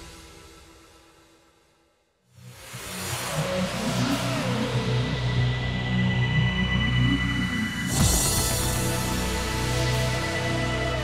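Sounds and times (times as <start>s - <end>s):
cinematic soundtrack music: 3.1s - 11.0s.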